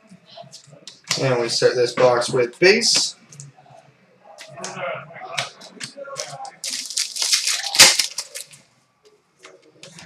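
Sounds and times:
cards flicking and rustling: 0:05.8 - 0:08.6.

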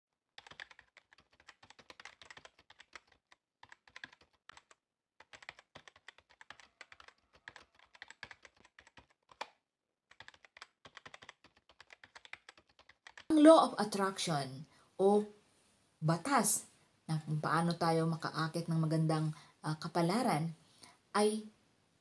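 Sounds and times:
faint computer keyboard typing: 0:00.3 - 0:13.3.

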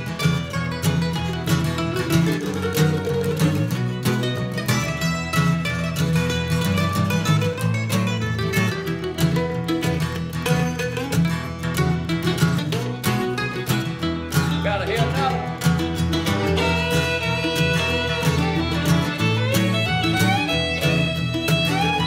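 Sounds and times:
fiddle: 0:00.0 - 0:22.0
mandolin: 0:00.0 - 0:22.0
strummed acoustic guitar: 0:00.0 - 0:22.0
upright bass: 0:00.0 - 0:22.0.

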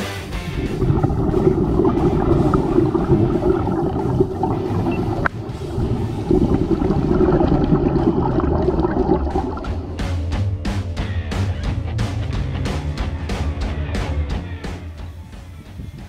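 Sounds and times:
muffled underwater rushing: 0:00.3 - 0:10.4.

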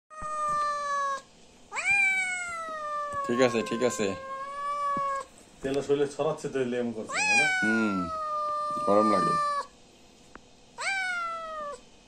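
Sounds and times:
cat meowing: 0:00.1 - 0:05.3, 0:07.0 - 0:09.8, 0:10.8 - 0:11.9.

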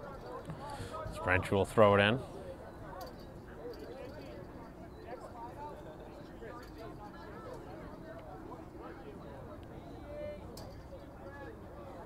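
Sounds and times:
faint distant voices: 0:00.0 - 0:12.0
low background noise: 0:00.0 - 0:12.0.

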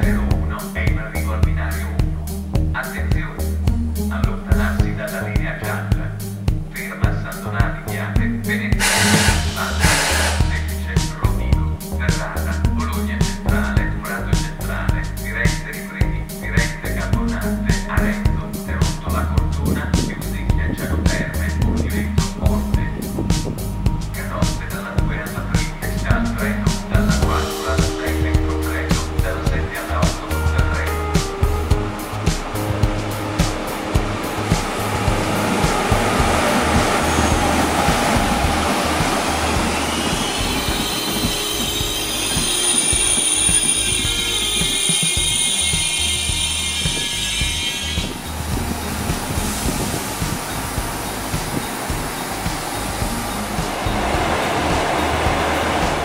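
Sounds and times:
background music: 0:00.0 - 0:56.0
high-pitched brake squeal: 0:08.8 - 0:10.7, 0:39.4 - 0:48.3
train rolling and slowing: 0:08.8 - 0:10.9, 0:25.8 - 0:56.0.

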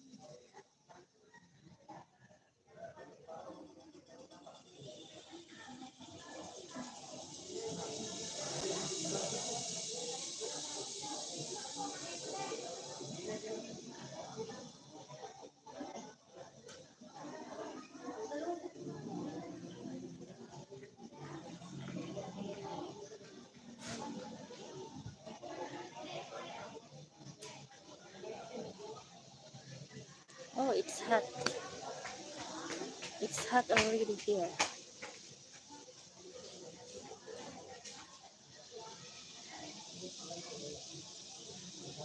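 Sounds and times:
steady high hiss: 0:04.8 - 0:15.5, 0:24.0 - 0:42.0
indistinct voices talking: 0:29.1 - 0:36.2.

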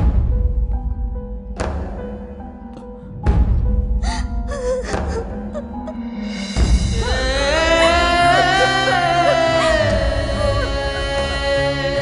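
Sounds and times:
film background music: 0:00.0 - 0:12.0
woman sobbing: 0:04.0 - 0:06.2, 0:06.9 - 0:12.0.

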